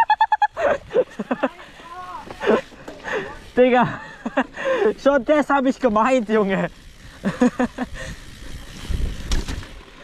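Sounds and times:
bike rumbling over bumpy trail: 0.5s - 10.0s.

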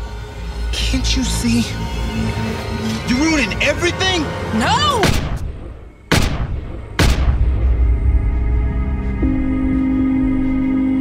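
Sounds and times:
echoing gunshots: 5.0s - 7.6s.

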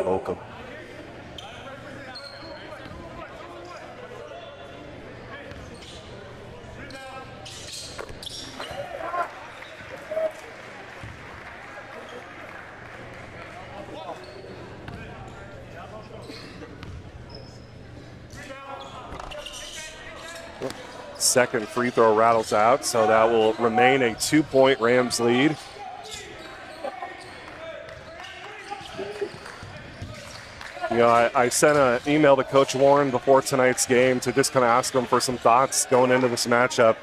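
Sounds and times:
murmur of crowd voices: 0.0s - 37.0s.

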